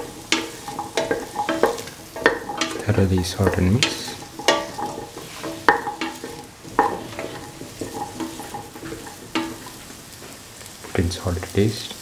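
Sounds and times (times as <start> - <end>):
sharp ringing knocks on pot: 0.0 - 9.7
spatula scraping metal pot: 0.0 - 10.2
vegetables sizzling in oil: 0.0 - 12.0.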